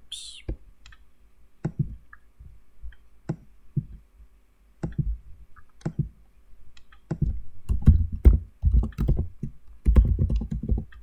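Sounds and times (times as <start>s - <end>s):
mouse and keyboard clicks: 6.7s - 7.9s.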